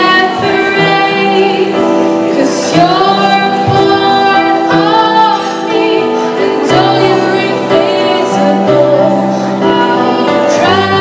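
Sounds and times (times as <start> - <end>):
woman singing into microphone: 0.0 - 11.0.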